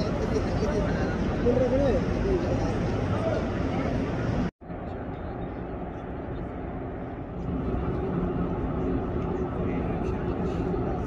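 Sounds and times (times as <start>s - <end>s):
faint voices: 0.0s - 11.0s
low outdoor rumble: 0.0s - 11.0s.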